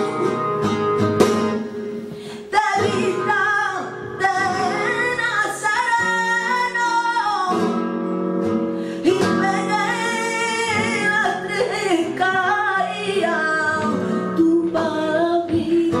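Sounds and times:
flamenco guitar: 0.0 - 16.0
woman singing flamenco: 0.0 - 16.0.

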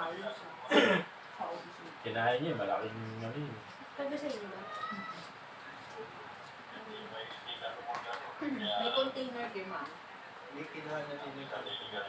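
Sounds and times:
loud cough: 0.7 - 1.1.

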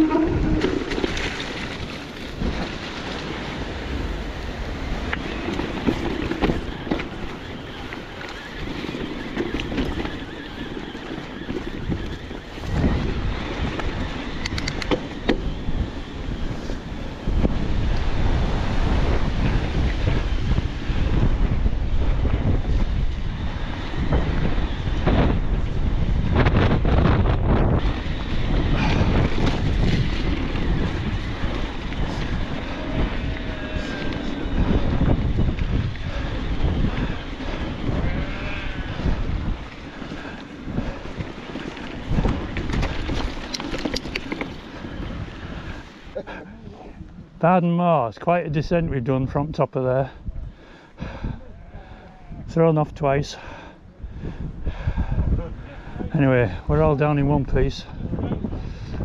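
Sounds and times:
bike rumbling and rattling: 0.0 - 47.5, 50.0 - 59.0
wind buffeting microphone: 0.0 - 59.0.

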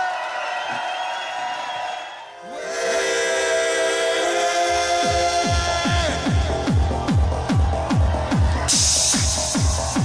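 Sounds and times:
crowd cheering: 0.0 - 10.0
electronic music with synth chord: 2.3 - 10.0.

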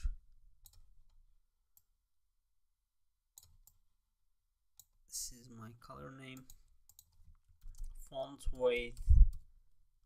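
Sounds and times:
computer mouse clicking: 3.4 - 3.8, 6.4 - 9.5.

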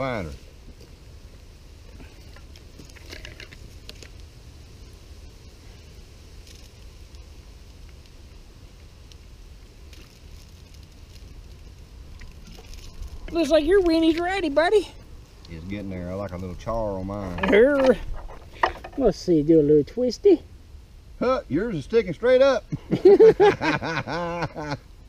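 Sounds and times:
campfire crackling: 0.0 - 25.0.

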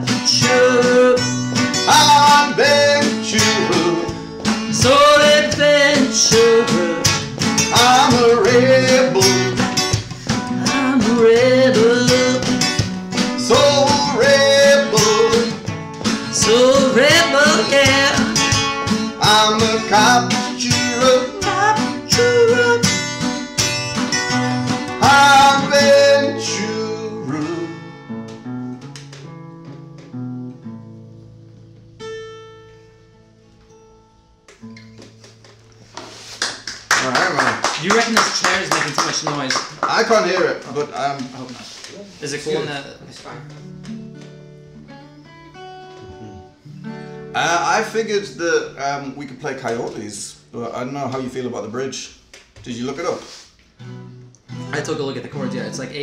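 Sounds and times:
man singing: 0.0 - 23.5, 24.2 - 28.2
acoustic guitars strummed: 0.0 - 36.4, 37.2 - 51.4, 52.2 - 56.0.

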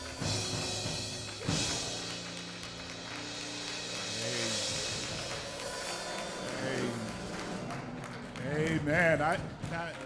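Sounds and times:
organ sustained chords: 0.1 - 9.1.

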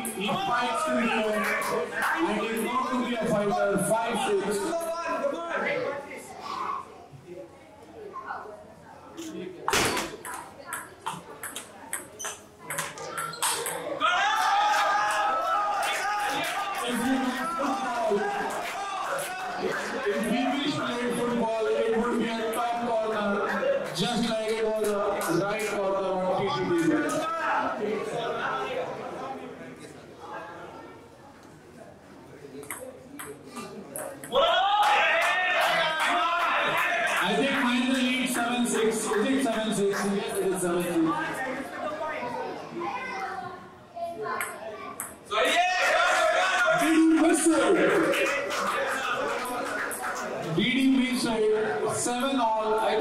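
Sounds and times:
table tennis ball clicking: 10.2 - 13.8, 32.6 - 33.4.

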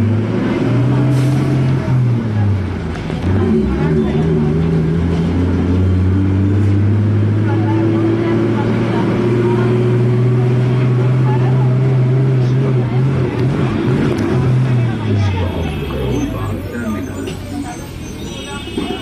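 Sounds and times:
vehicle engine running: 0.0 - 18.0
street traffic: 0.0 - 19.0
faint voices: 7.0 - 19.0.

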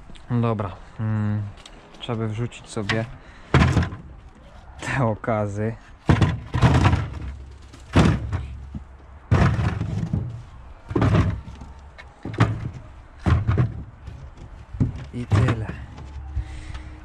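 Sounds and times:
turnips thudding into plastic bucket: 6.1 - 16.5.

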